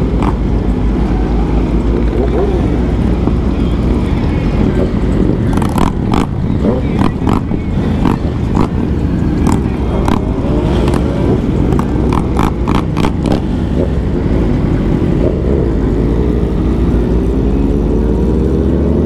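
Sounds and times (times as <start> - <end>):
motorcycle engine accelerating: 0.0 - 19.0
wind rumble on microphone: 0.0 - 19.0.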